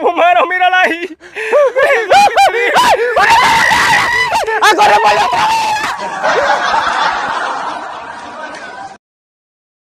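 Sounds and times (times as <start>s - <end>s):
laughter: 1.5s - 3.2s, 5.8s - 9.0s.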